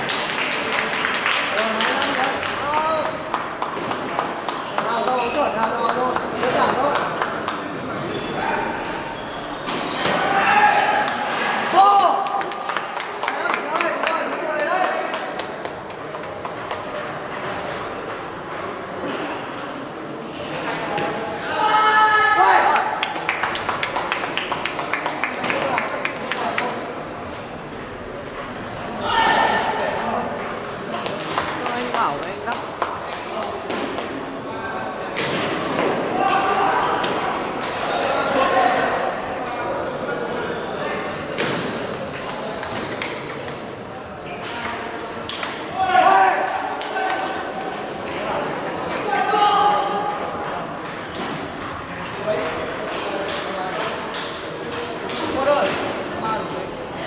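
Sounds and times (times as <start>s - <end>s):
people talking: 0.6s - 12.3s, 25.0s - 57.0s.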